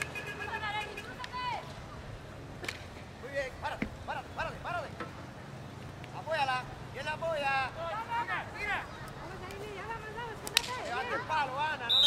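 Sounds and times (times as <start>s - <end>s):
voices calling: 0.0s - 12.0s.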